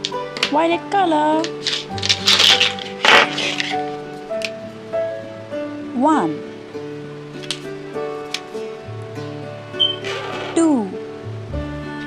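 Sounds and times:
background music: 0:00.0 - 0:12.0
plastic markers clattering: 0:01.4 - 0:03.8.

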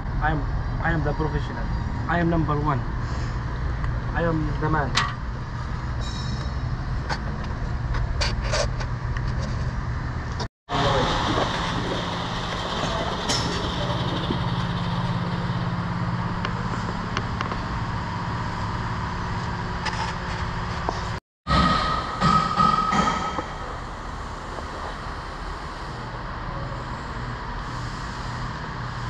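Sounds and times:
steady mechanical hum: 0:00.0 - 0:29.0.

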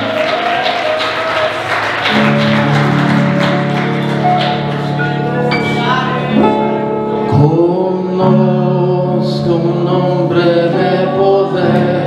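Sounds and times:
worship band playing: 0:00.0 - 0:12.0.

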